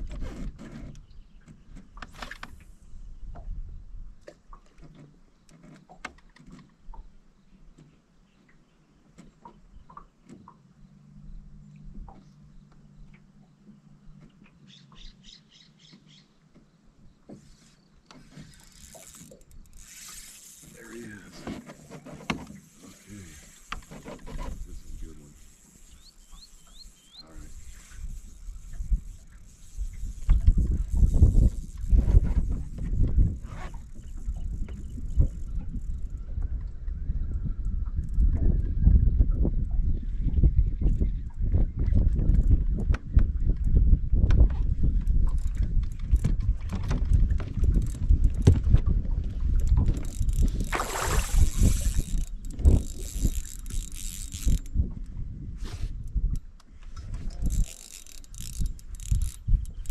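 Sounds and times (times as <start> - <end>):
wind buffeting microphone: 25.9 - 59.9.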